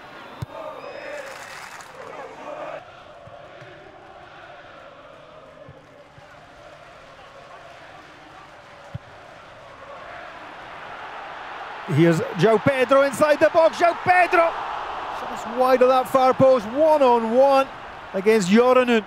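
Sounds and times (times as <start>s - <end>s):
stadium crowd din: 0.0s - 19.0s.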